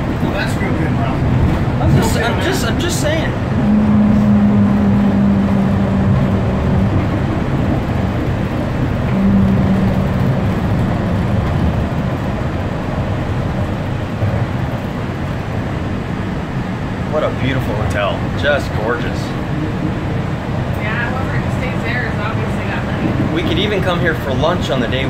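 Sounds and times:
train rumble from inside: 0.0 - 25.0
low hum: 0.9 - 23.4.

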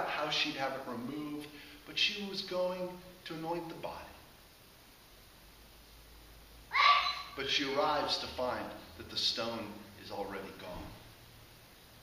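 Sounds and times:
man speaking: 0.0 - 4.2, 7.4 - 11.0.

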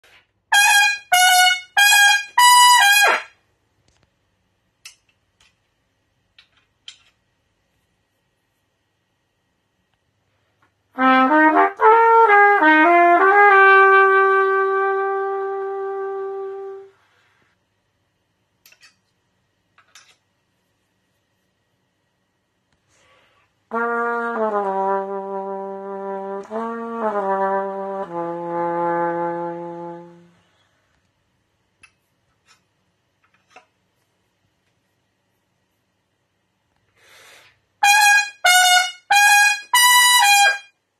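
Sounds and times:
trumpet phrase: 0.5 - 3.3, 11.0 - 16.9, 23.7 - 30.3, 37.8 - 40.7
short breath: 22.8 - 23.6, 36.9 - 37.6.

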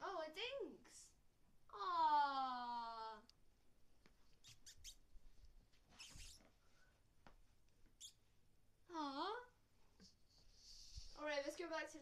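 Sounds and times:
faint scratchy noises: 4.0 - 8.4.

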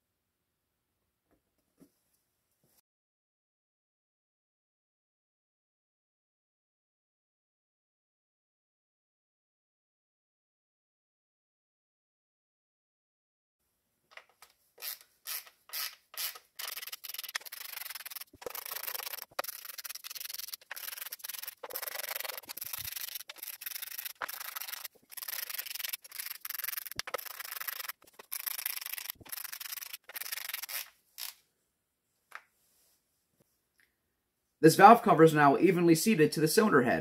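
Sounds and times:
hand ratchet clicking: 14.8 - 31.4.

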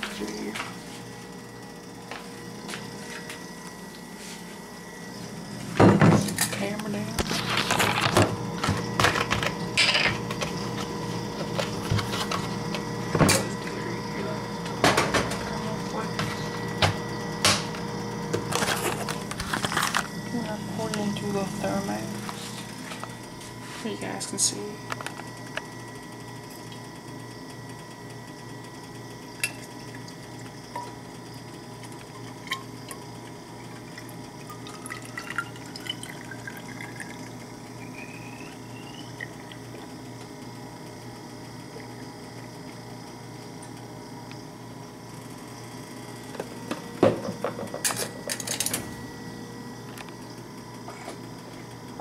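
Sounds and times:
water filling a thermos: 33.9 - 37.4.

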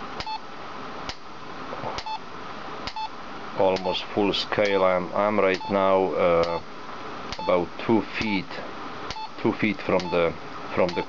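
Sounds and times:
meter high beep: 5.5 - 6.6, 7.4 - 7.6.

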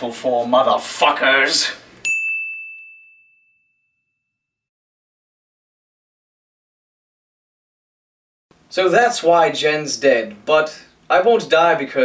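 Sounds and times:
bright bell ding: 2.0 - 4.3.

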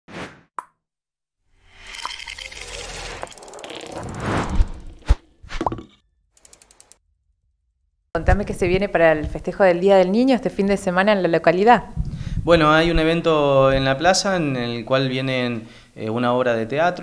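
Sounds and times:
short swish: 3.9 - 5.7
rapid ticks: 6.4 - 7.0.

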